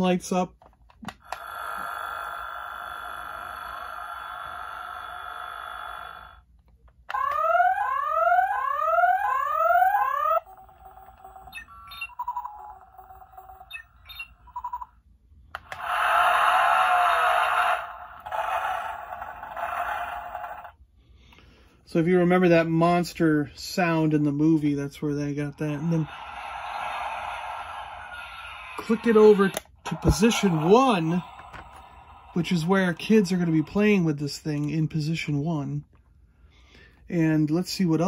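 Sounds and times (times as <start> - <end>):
toy engine-like hum: 1.1 - 6.5, 7.1 - 14.9, 15.6 - 20.8, 25.7 - 34.0
electronic beeps: 11.2 - 14.9
rising electronic sweeps: 25.6 - 34.0.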